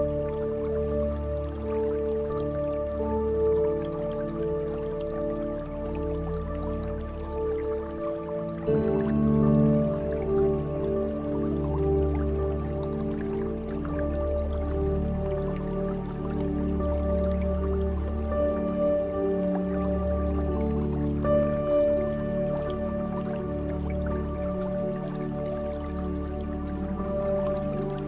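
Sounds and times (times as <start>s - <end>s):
ambient meditation music: 0.0s - 28.0s
water drips: 0.0s - 28.0s.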